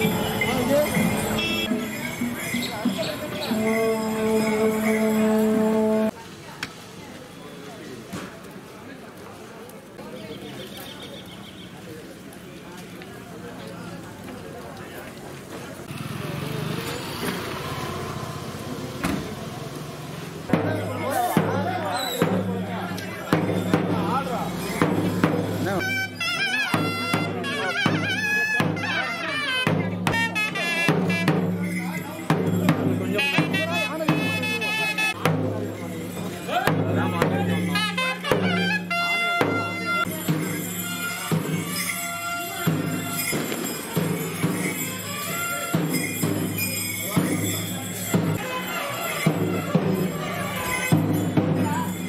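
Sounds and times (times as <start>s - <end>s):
nadaswaram melody: 0.0s - 6.1s, 20.5s - 52.0s
voices: 0.0s - 52.0s
double reed gliding melody: 3.4s - 6.1s
thavil drum: 20.5s - 35.6s.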